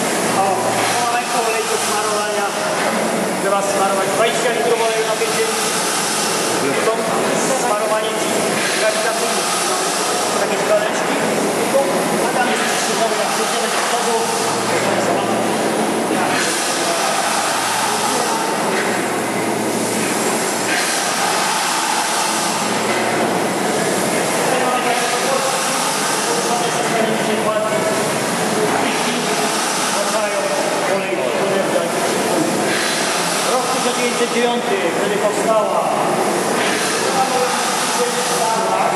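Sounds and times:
steam engine rumble and hiss: 0:00.0 - 0:38.9.

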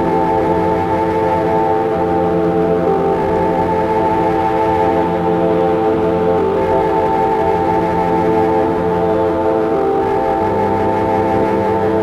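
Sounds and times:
ambient synthesizer drone: 0:00.0 - 0:12.0.

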